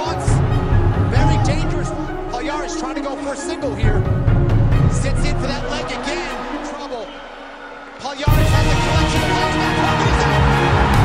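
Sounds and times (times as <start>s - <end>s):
man talking: 0.0s - 0.4s, 1.1s - 4.2s, 4.8s - 7.2s, 8.0s - 10.5s
music with deep bass: 0.0s - 11.0s.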